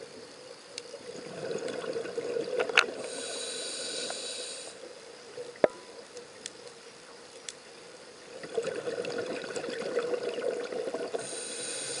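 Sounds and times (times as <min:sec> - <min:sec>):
faint high whine: 0:00.0 - 0:12.0
air bubbles gurgling underwater: 0:01.0 - 0:03.3, 0:08.3 - 0:11.5.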